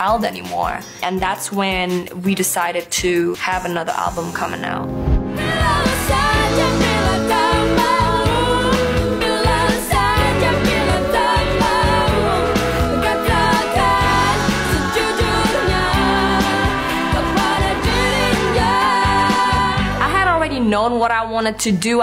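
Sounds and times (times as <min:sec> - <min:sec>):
pop song with sung vocals: 0:00.0 - 0:21.2.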